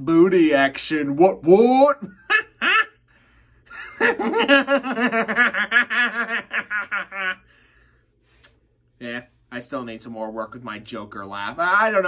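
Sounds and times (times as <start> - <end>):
faint breath: 3.1 - 3.7, 7.5 - 8.7.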